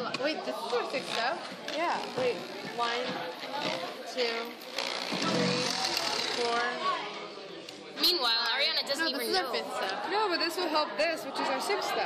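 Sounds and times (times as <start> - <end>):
classroom background noise: 0.0 - 12.0
young voices talking: 0.0 - 12.0.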